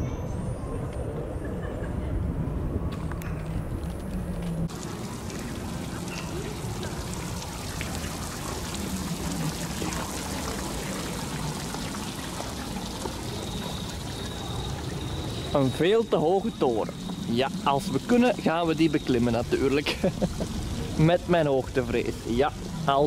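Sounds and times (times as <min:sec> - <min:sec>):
fountain water splashing on stone: 0:04.7 - 0:23.0.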